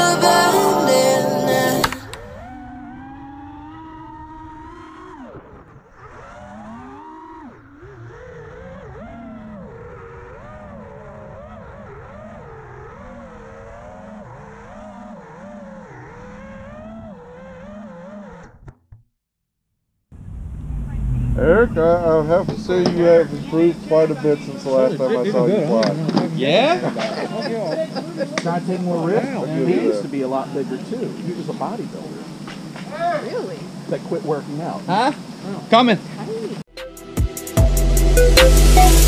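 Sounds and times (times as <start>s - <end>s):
quadcopter motors whining: 1.7s - 18.2s, 20.4s - 36.6s.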